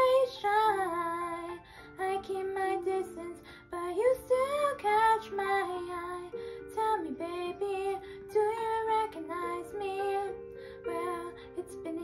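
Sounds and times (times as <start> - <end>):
girl singing: 0.0 - 12.0.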